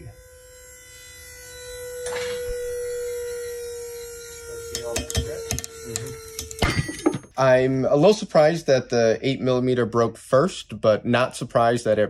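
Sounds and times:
electric whine of test rig: 0.0 - 10.5.

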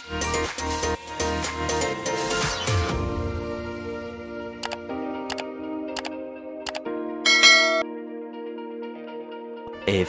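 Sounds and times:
soft background music: 0.3 - 10.0
bright bell chime: 7.3 - 7.8.

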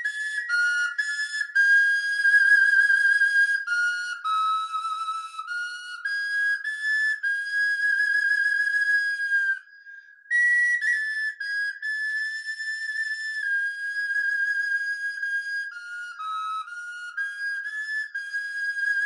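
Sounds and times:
bone flute melody: 0.0 - 9.7, 10.3 - 19.0.

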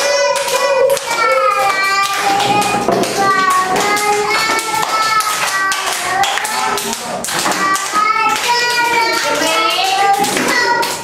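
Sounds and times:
children singing: 0.0 - 11.0
hands clapping in rhythm: 0.0 - 11.0.

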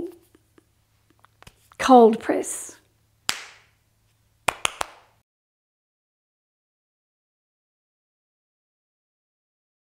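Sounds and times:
hand claps: 3.3 - 3.8, 4.5 - 5.2.

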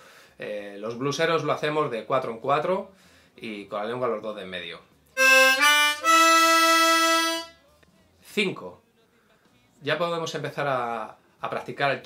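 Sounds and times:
harmonica held octave: 5.2 - 7.6.

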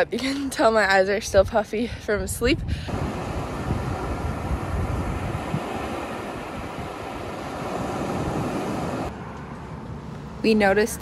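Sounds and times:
small waves breaking on beach: 2.9 - 9.1.

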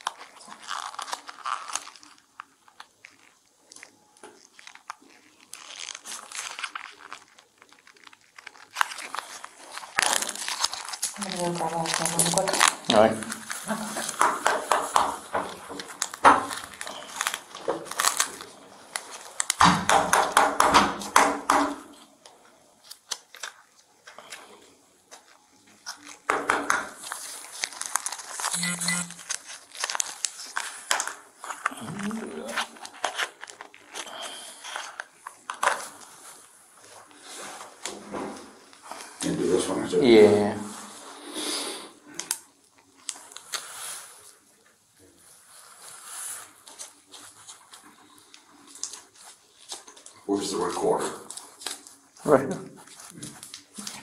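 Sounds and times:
packaging crinkling and rustling: 0.0 - 41.2, 41.9 - 54.0.

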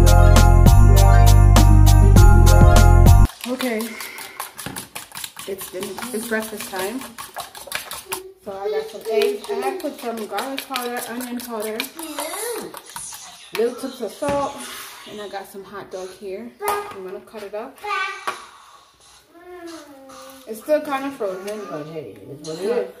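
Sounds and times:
background music: 0.0 - 3.3.

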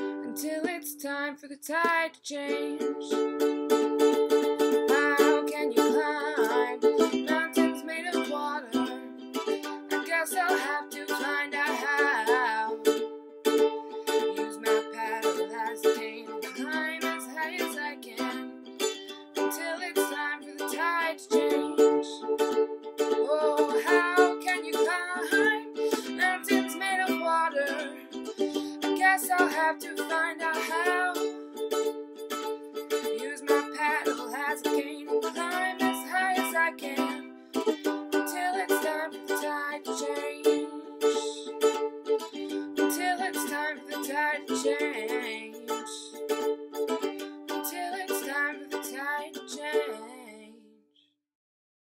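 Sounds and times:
ukulele strummed: 0.0 - 50.4.

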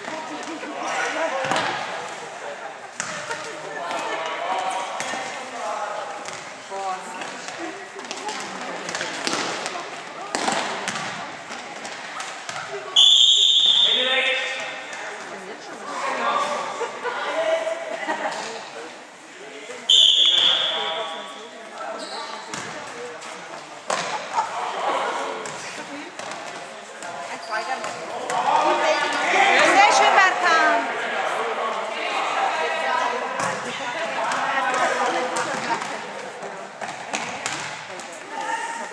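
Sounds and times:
echoing voices: 0.0 - 38.9
ball thuds in a hall: 1.4 - 2.0, 3.0 - 3.5, 7.2 - 13.6, 23.9 - 24.5, 36.8 - 38.0
referee's whistle blast: 13.0 - 14.1, 19.9 - 21.3.

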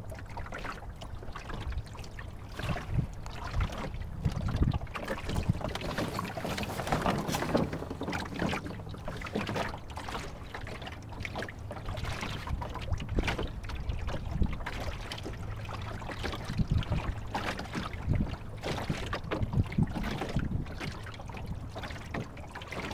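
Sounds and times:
water splashing against hull: 0.0 - 22.9
wind rumbling on microphone: 1.0 - 9.5, 11.0 - 22.9.

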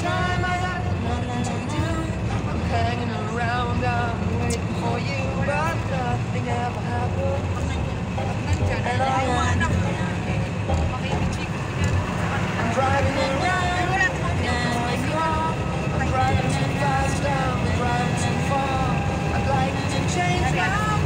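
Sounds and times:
car engine and road rumble: 0.0 - 21.0
voices: 0.0 - 21.0.

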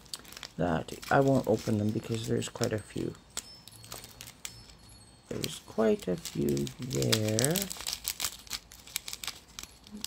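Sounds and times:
plastic bag crinkling: 0.0 - 10.0
small metal pieces clinking: 0.2 - 10.0.

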